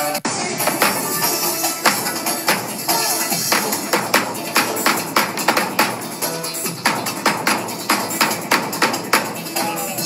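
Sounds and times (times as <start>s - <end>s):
large drums beaten with sticks: 0.6s - 10.0s.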